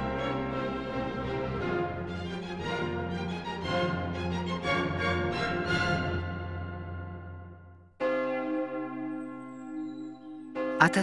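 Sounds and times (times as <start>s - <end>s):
bell ringing: 8.0s - 11.0s.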